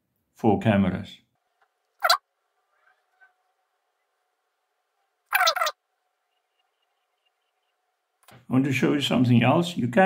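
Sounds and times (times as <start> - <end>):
bird call harsh notes: 2.0 - 3.4, 5.3 - 7.8.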